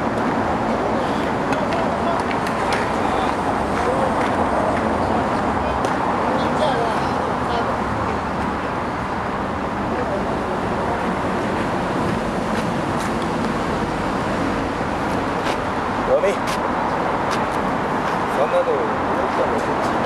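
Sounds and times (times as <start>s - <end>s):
outdoor field background noise: 0.0s - 20.0s.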